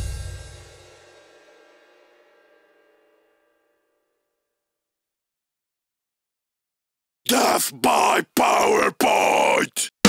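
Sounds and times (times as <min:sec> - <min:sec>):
harsh distorted vocal bursts: 0:07.3 - 0:10.0.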